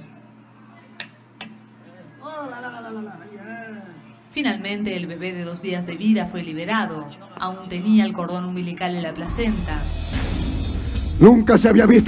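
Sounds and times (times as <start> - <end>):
faint steady hum: 0.0 - 10.1.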